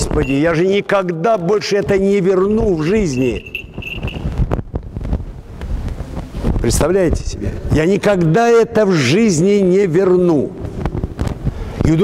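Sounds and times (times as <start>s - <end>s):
wind rumble on microphone: 2.4s - 7.8s, 10.5s - 12.0s.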